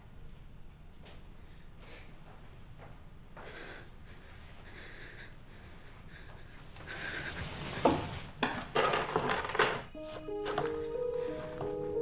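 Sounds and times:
small objects clinking on desk: 8.8s - 9.9s
soft music with held notes: 9.9s - 12.0s.

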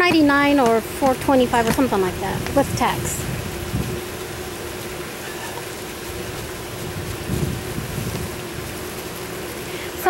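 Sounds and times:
faint steady hum: 0.0s - 10.0s
steady hiss: 0.0s - 10.0s
wind rumbling on microphone: 0.0s - 10.0s.

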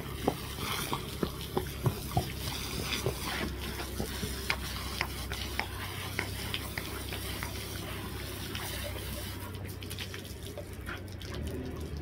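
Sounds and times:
garden hose spraying water: 0.0s - 12.0s
water spattering on ground: 0.0s - 12.0s.

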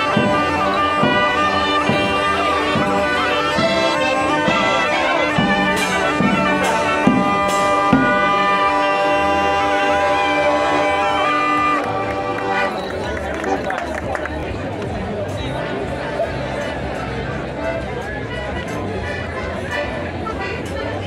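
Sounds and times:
bass drum beats: 0.0s - 9.6s
reed pipe: 0.0s - 13.2s
bagpipe with drone: 0.0s - 13.6s
crowd chatter: 0.0s - 21.0s.

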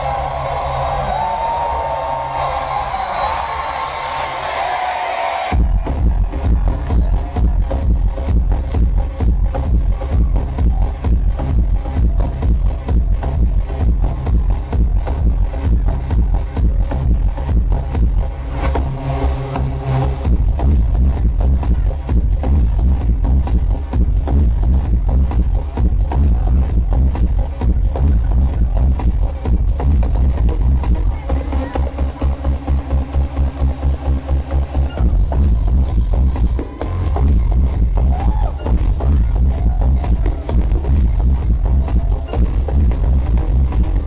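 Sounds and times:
electro house music loud: 0.0s - 44.0s.

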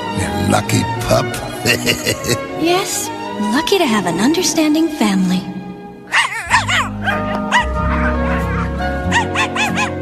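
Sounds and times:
background music with held notes: 0.0s - 10.0s
cartoon puppy yipping: 6.1s - 10.0s.

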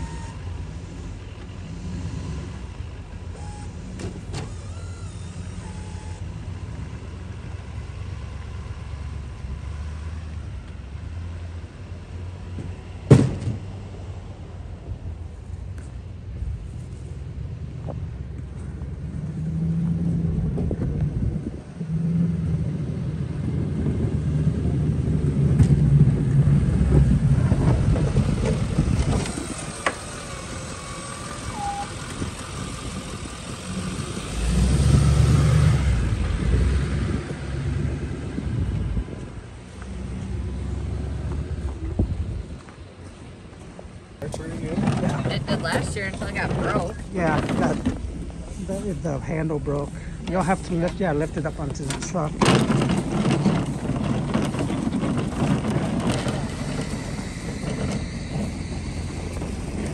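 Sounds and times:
truck engines rumbling: 0.0s - 59.9s.

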